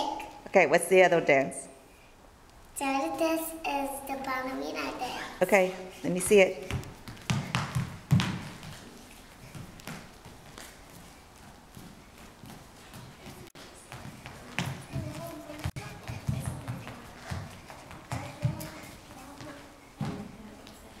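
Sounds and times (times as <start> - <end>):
child's feet landing on dance floor: 6.6 - 10.8.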